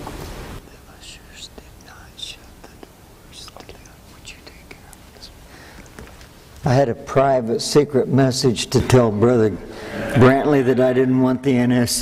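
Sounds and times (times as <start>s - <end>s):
man whispering: 0.6s - 5.5s
mouth clicks: 2.6s - 3.9s.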